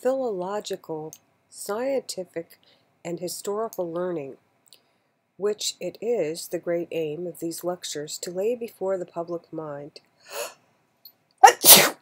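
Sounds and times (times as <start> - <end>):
person sneezing: 11.4 - 12.0.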